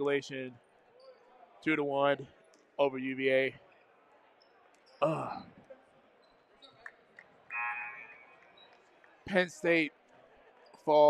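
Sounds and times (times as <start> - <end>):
low murmur of voices: 0.0 - 11.0
sneaker squeaks: 1.0 - 1.3, 6.2 - 8.9.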